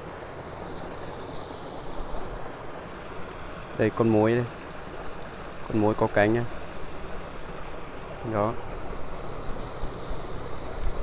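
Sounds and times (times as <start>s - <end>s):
stream water running: 0.0s - 11.0s.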